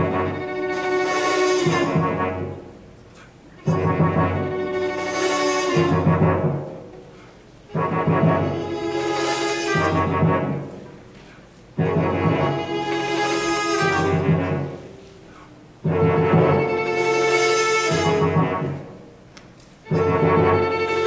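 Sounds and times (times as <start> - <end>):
orchestra with timpani and brass: 0.0 - 21.0.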